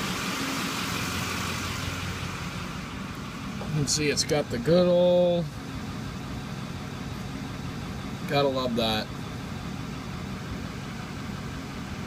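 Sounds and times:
diesel engine idling: 0.0s - 12.0s.

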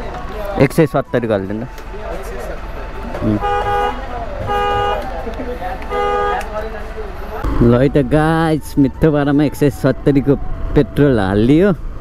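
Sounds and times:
vehicle horn toots: 3.2s - 5.2s, 5.9s - 6.5s.

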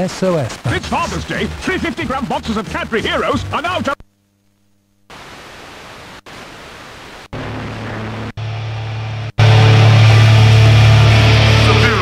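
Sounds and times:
radio static hiss: 0.0s - 8.5s
low hum: 7.2s - 12.0s
strong low radio drone: 7.3s - 12.0s.

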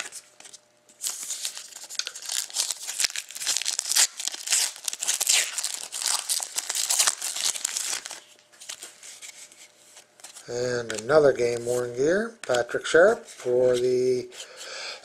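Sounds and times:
foil wrapper crinkling and tearing: 1.0s - 9.3s.

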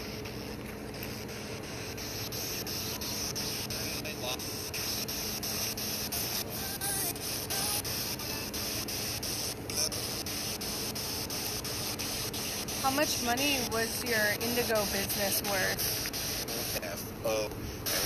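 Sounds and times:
faint voices talking: 1.3s - 5.4s, 12.2s - 15.8s
steady high hiss: 5.4s - 18.0s.

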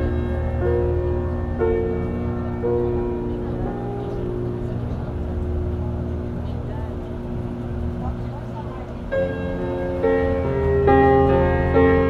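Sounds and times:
car road rumble from inside: 0.0s - 12.0s.

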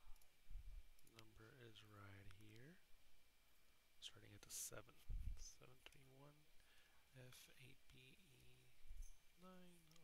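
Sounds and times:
computer mouse clicks: 0.1s - 1.4s, 5.8s - 6.1s, 9.8s - 10.0s.

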